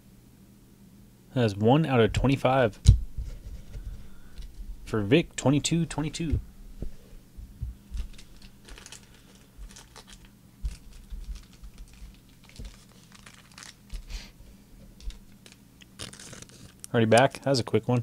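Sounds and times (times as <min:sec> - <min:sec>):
faint steady hum: 0:00.0 - 0:18.0
plastic wrap crinkling: 0:07.9 - 0:14.3, 0:15.0 - 0:17.5.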